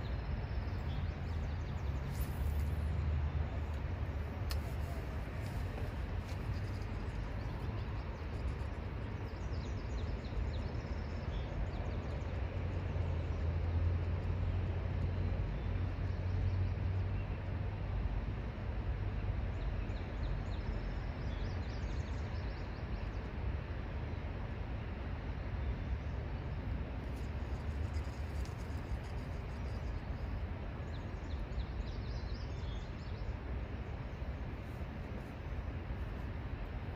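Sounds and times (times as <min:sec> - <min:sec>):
songbird chirps: 0:00.0 - 0:17.8, 0:19.4 - 0:36.6
outdoor background rumble and hiss: 0:00.0 - 0:36.9.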